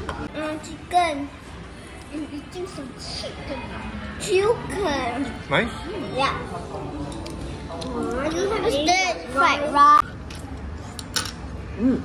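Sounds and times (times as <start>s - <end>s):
restaurant room noise: 0.0s - 12.0s.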